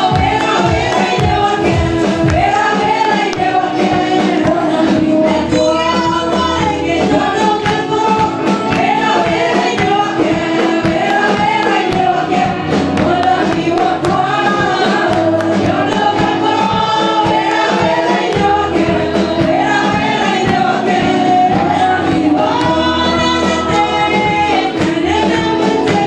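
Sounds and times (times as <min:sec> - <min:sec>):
band playing: 0:00.0 - 0:26.0
choir singing gospel: 0:00.0 - 0:26.0
drum beat: 0:00.0 - 0:26.0.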